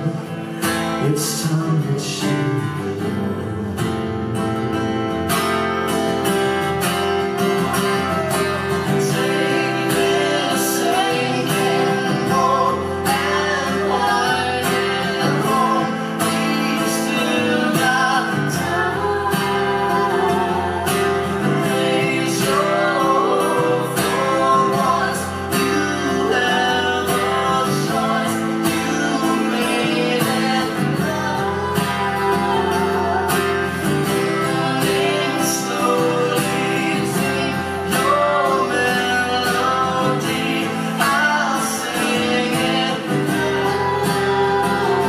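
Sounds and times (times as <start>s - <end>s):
man and woman singing: 0.0s - 4.0s, 7.4s - 45.0s
acoustic guitar strumming: 0.0s - 45.0s.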